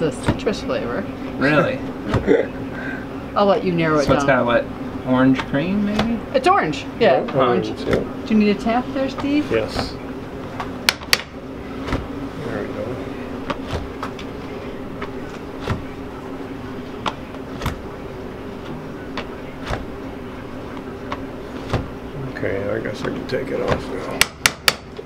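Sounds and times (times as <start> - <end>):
low hum of kitchen equipment: 0.0 - 25.0.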